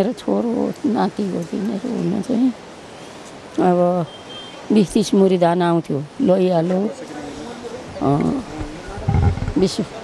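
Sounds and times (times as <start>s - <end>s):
elderly woman speaking: 0.0s - 2.6s, 3.6s - 4.1s, 4.7s - 7.4s, 8.0s - 8.5s, 9.5s - 10.0s.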